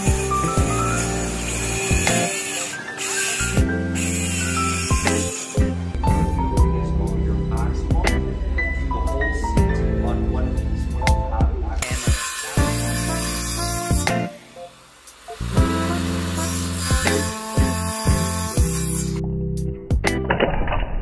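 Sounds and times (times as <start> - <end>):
circular saw cutting wood: 0.0 - 6.0, 11.8 - 19.2
background music: 0.0 - 20.6.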